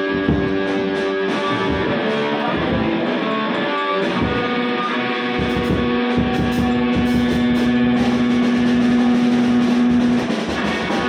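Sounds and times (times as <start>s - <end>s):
drums and cymbals: 0.0s - 11.0s
electric guitar long note: 0.0s - 11.0s.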